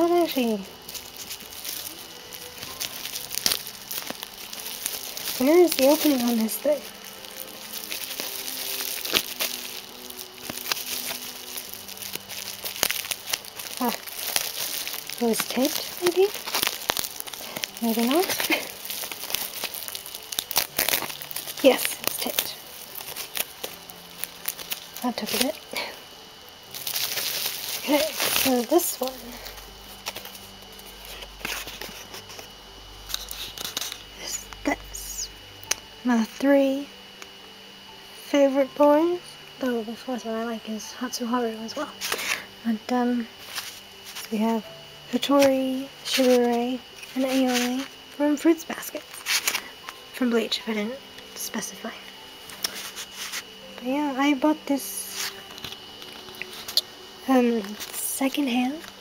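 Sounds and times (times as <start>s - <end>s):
plastic wrapping crinkling: 0.0s - 36.4s, 41.6s - 59.0s
steady low hum: 0.0s - 59.0s.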